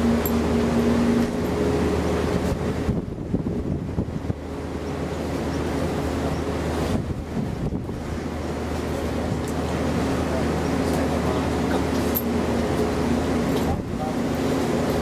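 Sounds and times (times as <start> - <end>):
boat engine droning: 0.0 - 15.0
steady hum: 0.0 - 15.0
wind on microphone: 1.2 - 4.6, 6.7 - 8.4.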